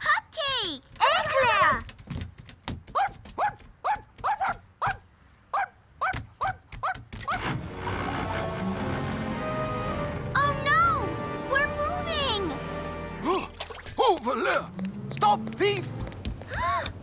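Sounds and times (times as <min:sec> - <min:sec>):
cartoon puppy yipping: 0:02.9 - 0:07.4
background music: 0:07.4 - 0:16.0.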